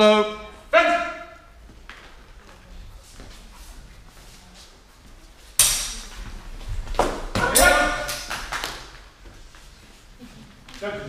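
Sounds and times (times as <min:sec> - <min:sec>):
man shouting: 0:00.0 - 0:01.5, 0:07.4 - 0:08.1
sword blades clashing: 0:05.6 - 0:06.2, 0:07.4 - 0:08.3.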